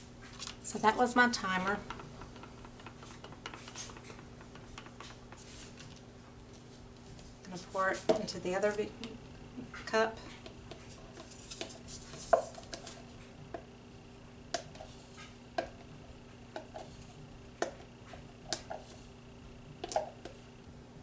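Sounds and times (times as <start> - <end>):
stir stick scraping plastic cup: 2.7 - 6.0, 10.3 - 13.3.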